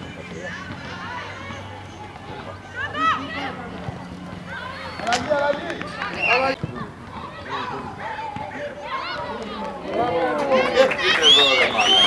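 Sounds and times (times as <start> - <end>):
voices shouting and calling: 0.0 - 12.0.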